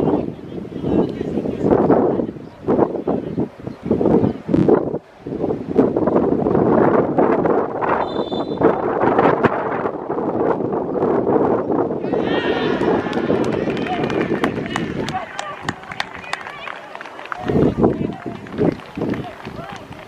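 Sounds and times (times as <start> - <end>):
wind buffeting microphone: 0.0 - 20.0
referee's whistle blast: 8.0 - 8.8
players shouting: 12.0 - 20.0
people clapping: 12.3 - 20.0.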